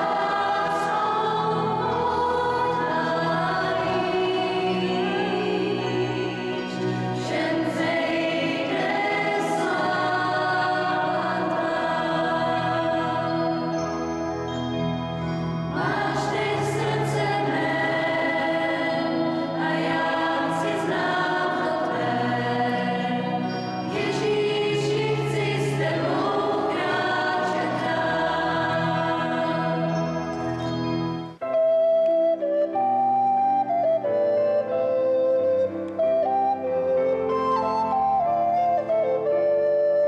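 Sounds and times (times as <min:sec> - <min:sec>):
choir singing a hymn: 0:00.0 - 0:14.2, 0:15.6 - 0:31.1
keyboard accompaniment: 0:00.0 - 0:40.0.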